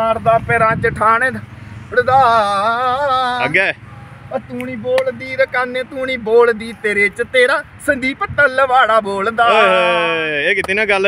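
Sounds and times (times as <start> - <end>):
man speaking in short phrases: 3.4 - 11.0.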